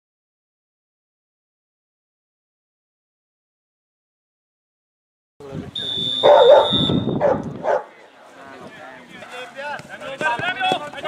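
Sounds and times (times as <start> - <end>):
referee's whistle blast: 5.8 - 7.3.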